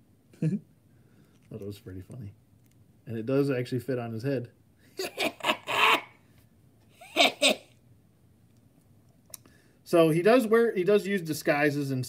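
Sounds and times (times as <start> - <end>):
man's breathy laugh: 4.9 - 6.2, 6.9 - 7.7.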